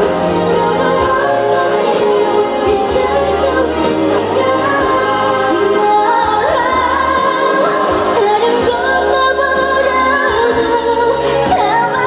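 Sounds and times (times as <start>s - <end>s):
band accompaniment: 0.0s - 12.0s
woman singing pop ballad: 0.0s - 12.0s.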